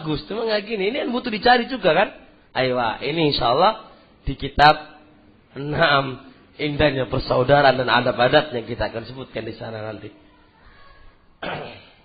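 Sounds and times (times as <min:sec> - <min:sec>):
person coughing: 0:11.4 - 0:12.0.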